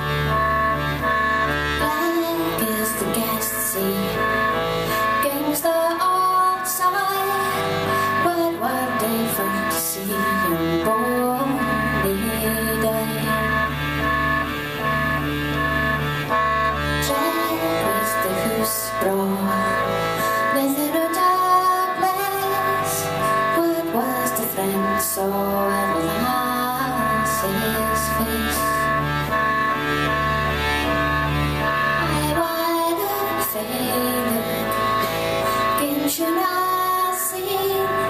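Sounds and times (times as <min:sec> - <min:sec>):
piano accordion chords: 0:00.0 - 0:38.0
woman singing: 0:01.8 - 0:13.7, 0:17.0 - 0:28.9, 0:32.0 - 0:34.9, 0:35.6 - 0:38.0.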